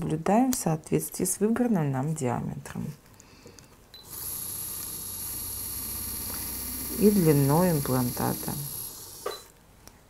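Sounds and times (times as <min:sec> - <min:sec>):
surgical drill whine: 0:04.0 - 0:09.5.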